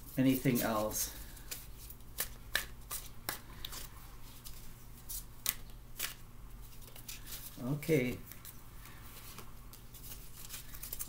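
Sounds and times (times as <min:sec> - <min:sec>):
cards being shuffled by hand: 0:00.1 - 0:11.0.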